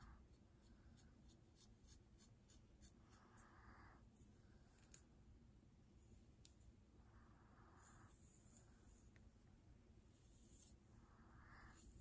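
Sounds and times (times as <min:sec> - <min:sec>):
comb scratching through hair: 0:00.0 - 0:03.5, 0:10.1 - 0:10.9.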